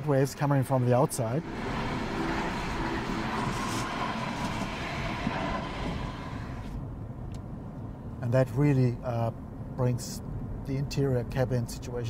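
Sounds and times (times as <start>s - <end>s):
tram rushing rumble: 0.8s - 7.7s.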